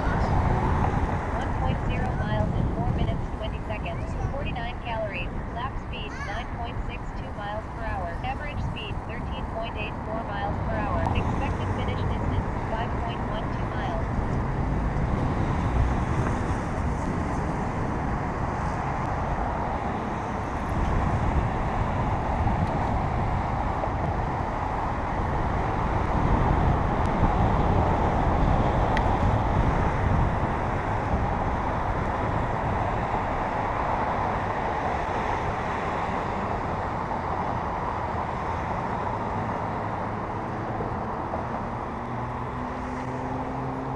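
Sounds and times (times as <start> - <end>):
car traffic: 0.0 - 43.9
wind rushing on microphone: 0.0 - 43.9.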